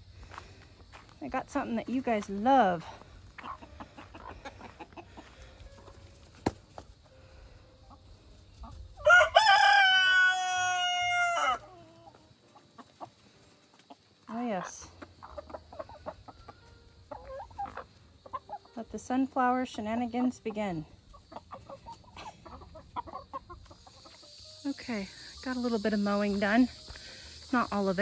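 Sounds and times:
chickens clucking and scratching: 0.2 - 28.0
rooster crowing: 9.0 - 11.7.

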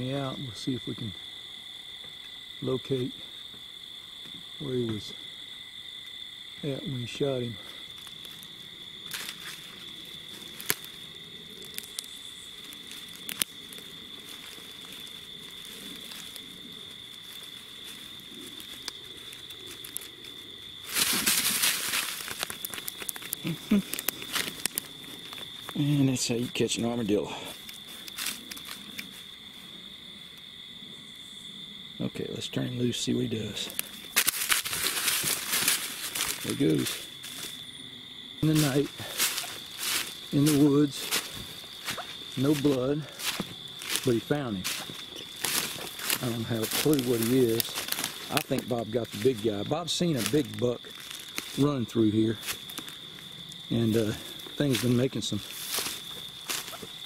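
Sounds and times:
high insect drone: 0.0 - 57.0
scramble in leaves: 4.4 - 31.1, 32.6 - 57.0
animal rustling through dry leaves: 7.8 - 25.8, 27.5 - 29.3, 33.8 - 37.6, 38.5 - 49.6, 50.2 - 51.7, 54.1 - 57.0.

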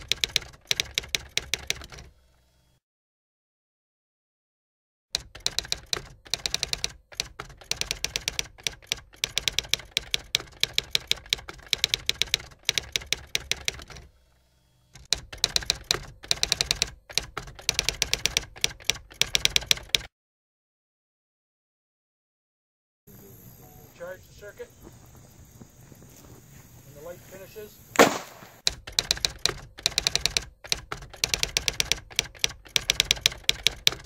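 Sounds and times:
typewriter key clacks: 5.2 - 13.9, 15.0 - 20.1, 28.6 - 34.0.

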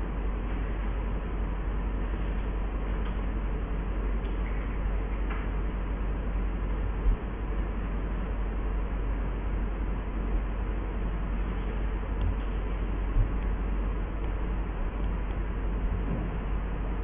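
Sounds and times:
background hum and hiss: 0.0 - 17.0.

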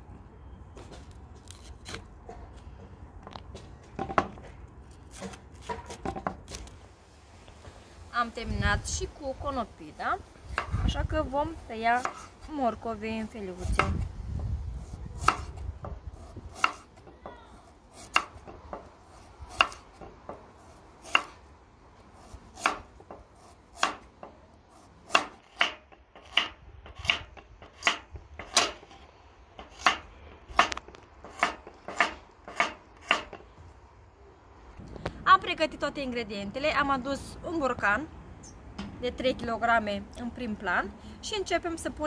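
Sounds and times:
knife chopping on wooden board: 15.2 - 15.6, 16.5 - 16.9, 19.5 - 20.4, 22.6 - 22.9, 25.1 - 28.8.

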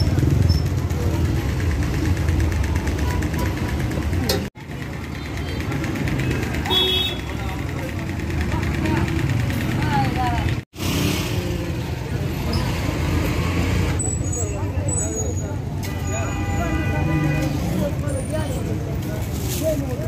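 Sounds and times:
vehicle engines running: 0.0 - 15.8
people talking: 0.8 - 10.6, 11.3 - 20.0.

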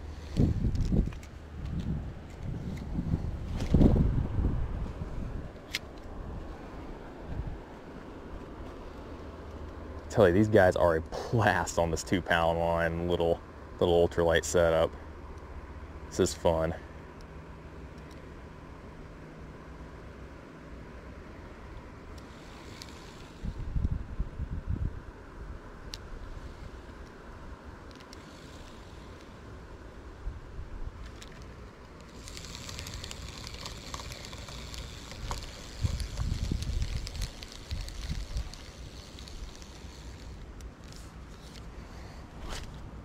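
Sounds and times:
wind buffeting microphone: 0.0 - 7.7, 23.3 - 25.6, 32.2 - 40.3
outdoor background noise: 0.0 - 43.0
steady high hiss: 3.9 - 43.0.

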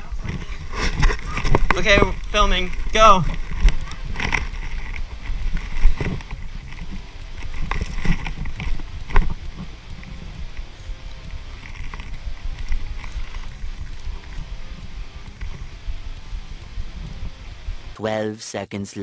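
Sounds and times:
sharp clicks and knocks: 0.2 - 18.0.

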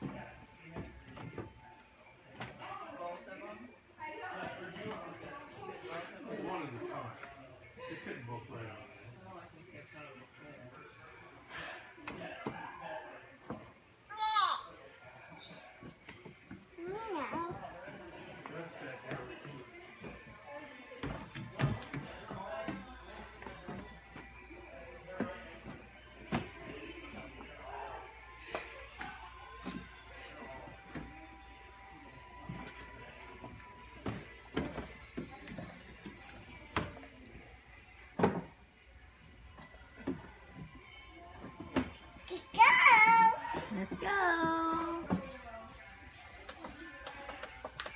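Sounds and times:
faint voices: 0.0 - 47.9
background music: 13.7 - 47.9.

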